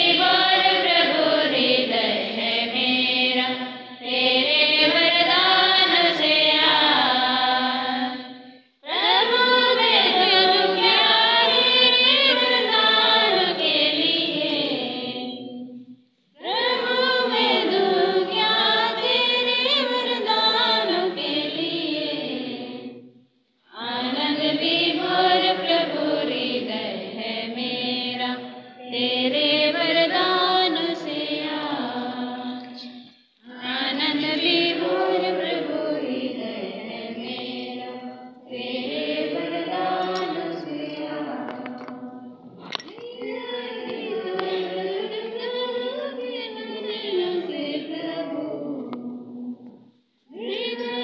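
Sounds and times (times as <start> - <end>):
congregation singing a hymn: 0.0 - 51.0.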